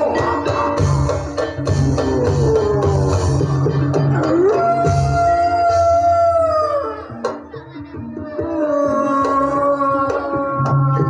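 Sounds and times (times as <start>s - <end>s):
gamelan accompaniment: 0.0s - 6.2s.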